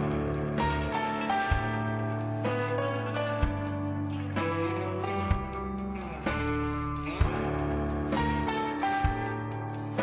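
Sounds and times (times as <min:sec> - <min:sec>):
electric guitars sustained notes: 0:00.0 - 0:10.0
live rock band playing: 0:00.0 - 0:10.0.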